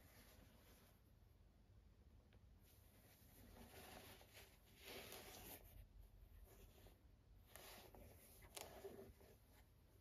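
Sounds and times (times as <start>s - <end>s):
gloves rustling on sneaker: 2.6s - 10.0s.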